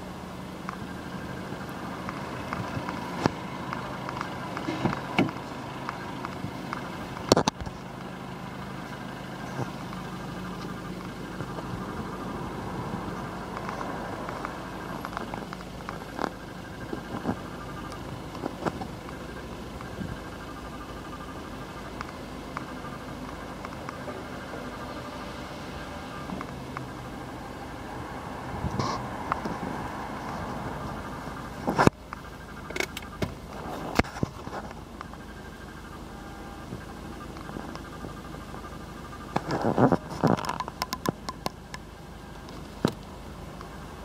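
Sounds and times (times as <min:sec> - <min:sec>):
low rumble of handling noise: 0:00.0 - 0:25.1, 0:28.6 - 0:44.0
diesel engine idling: 0:00.0 - 0:44.0
small clicks and rustles: 0:31.5 - 0:35.2, 0:36.7 - 0:43.8.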